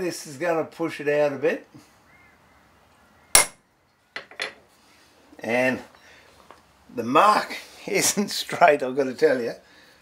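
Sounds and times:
hammer striking metal chisel: 3.4s - 3.6s.

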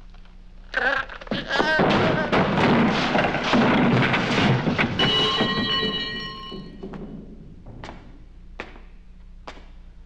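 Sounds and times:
person tumbling down stairs: 1.2s - 8.9s
metallic clang ringing: 5.0s - 6.8s.

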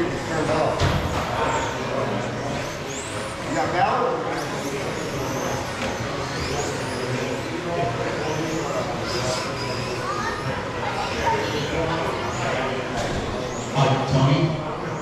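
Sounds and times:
background chatter: 0.0s - 15.0s
rc car motors whining: 0.1s - 13.8s.

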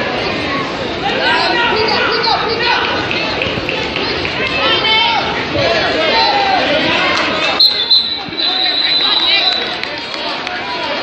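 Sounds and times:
people talking in a gymnasium: 0.0s - 11.0s
high steady tone: 7.6s - 9.8s.

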